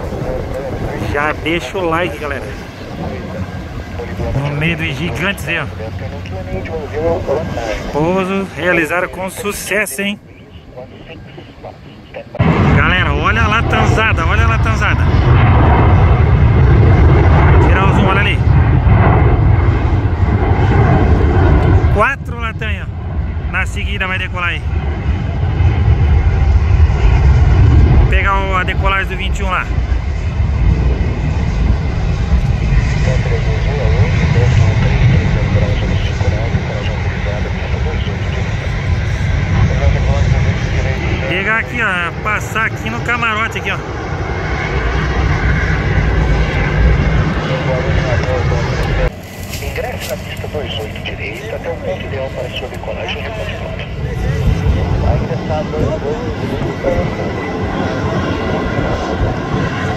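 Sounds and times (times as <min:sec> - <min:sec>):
jet engines rumbling: 0:00.0 - 0:59.9.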